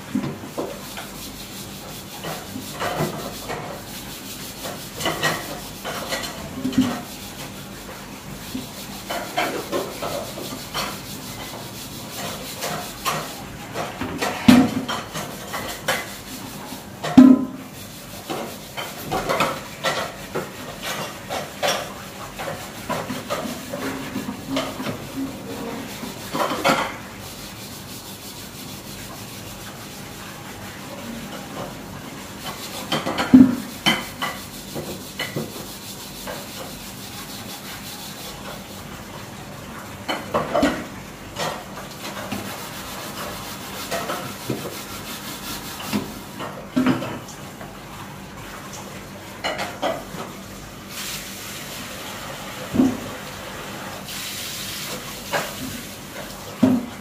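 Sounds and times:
scrubbing metal wok: 0.0s - 47.6s, 49.3s - 57.0s.

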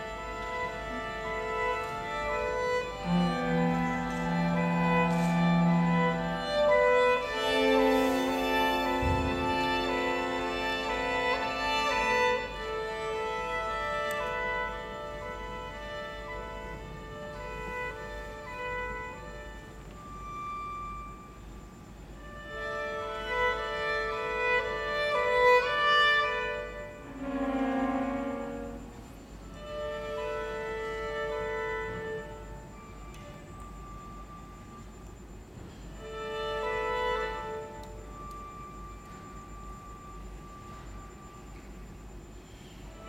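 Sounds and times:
low room hum: 0.0s - 43.0s
high bowed string note: 2.3s - 13.8s, 24.2s - 34.3s
bowed string high note: 3.0s - 12.4s.

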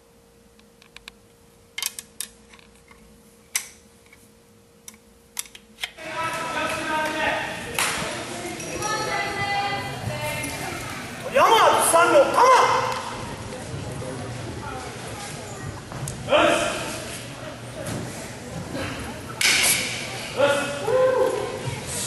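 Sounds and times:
chatter of many voices echoing: 6.0s - 22.0s.

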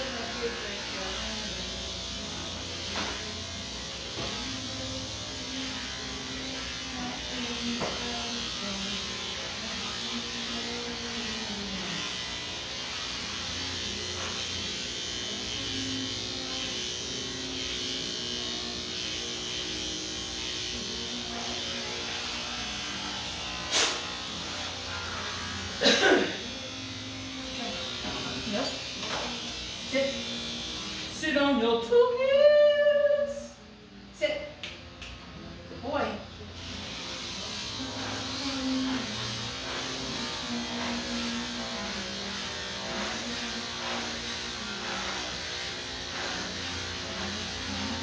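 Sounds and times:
electric clippers buzzing: 0.0s - 32.2s, 34.4s - 48.0s.

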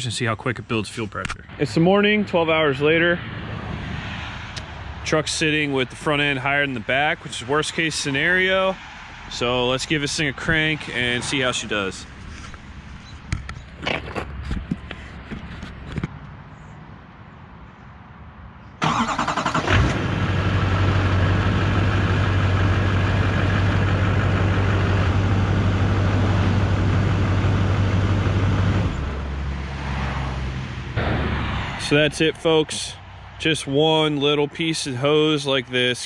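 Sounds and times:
diesel engine cranking: 18.8s - 29.3s
diesel engine idling: 18.8s - 29.5s.

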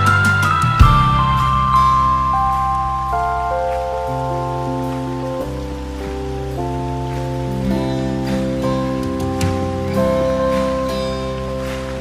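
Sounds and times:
held bass: 0.0s - 12.0s
keyboard chords: 0.0s - 12.0s
rain hiss: 0.0s - 12.0s.

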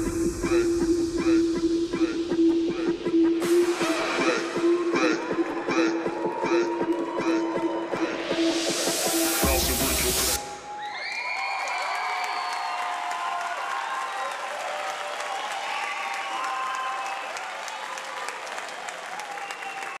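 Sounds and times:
rising noise sweep: 0.0s - 10.8s
electronic dance track: 0.0s - 11.0s
audience clapping and cheering: 3.4s - 20.0s
whoops and shouts: 10.5s - 18.3s.

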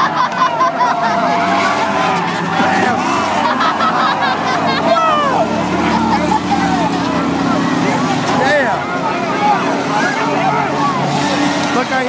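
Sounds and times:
car engines droning: 0.0s - 12.0s
crowd voices and shouts: 0.0s - 12.0s.

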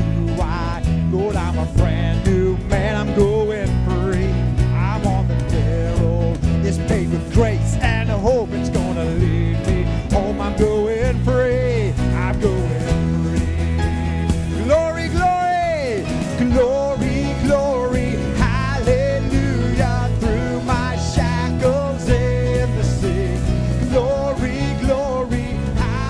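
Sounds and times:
acoustic guitar: 0.0s - 26.0s
bass guitar: 0.0s - 26.0s
keyboard: 0.0s - 26.0s.

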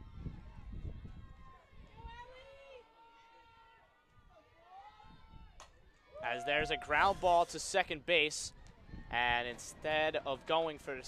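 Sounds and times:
wind rumble on microphone: 0.0s - 2.6s, 5.0s - 5.6s, 6.5s - 9.9s.

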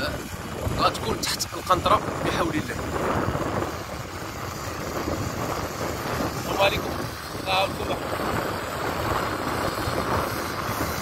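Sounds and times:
pressure washer engine and pump: 0.0s - 11.0s
water spraying on asphalt: 0.0s - 11.0s.

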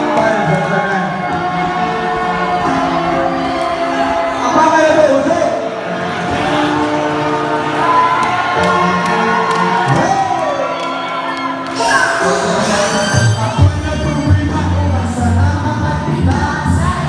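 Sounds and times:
crowd cheering and shouting: 0.0s - 17.0s
live concert music over pa: 0.0s - 17.0s
person singing: 11.7s - 17.0s.

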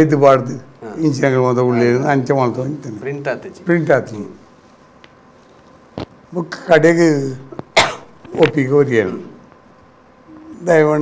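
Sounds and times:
man speaking: 0.0s - 4.4s, 8.3s - 9.4s, 10.4s - 11.0s.

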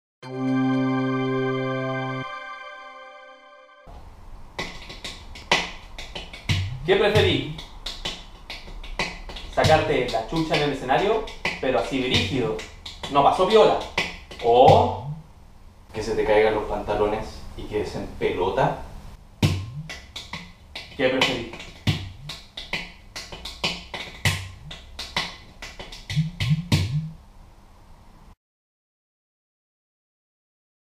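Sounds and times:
hand percussion clicks: 4.6s - 15.2s, 19.6s - 27.1s
drum hits with bending tones: 6.5s - 7.4s, 19.4s - 19.9s, 26.1s - 27.2s.

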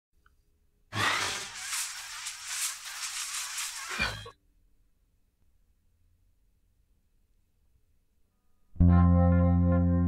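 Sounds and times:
rushing hissing whoosh: 1.0s - 4.3s.

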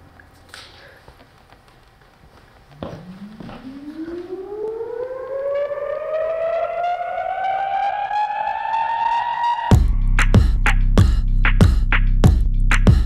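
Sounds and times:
air-raid siren winding up: 2.8s - 9.7s.

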